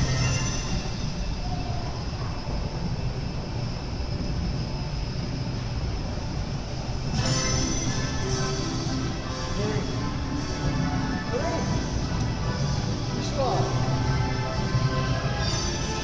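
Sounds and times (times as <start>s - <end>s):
carousel music: 0.0s - 2.2s, 7.0s - 16.0s
low rumble of turning carousel: 0.0s - 16.0s.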